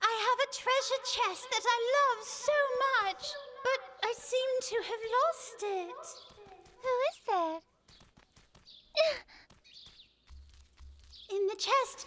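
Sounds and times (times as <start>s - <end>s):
cartoon voice wordless sounds: 0.1s - 7.5s.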